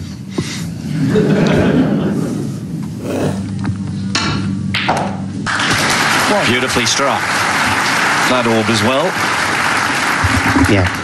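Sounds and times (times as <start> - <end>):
audience applause: 5.5 - 11.0.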